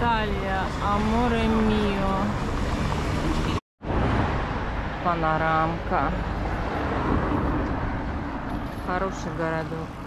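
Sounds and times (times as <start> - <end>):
road traffic rumble and hiss: 0.0 - 10.0.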